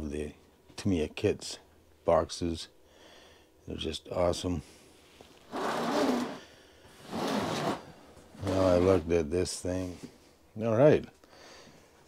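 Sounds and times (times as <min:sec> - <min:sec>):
cardboard box scraping across mat: 0:05.5 - 0:06.4, 0:07.0 - 0:09.0.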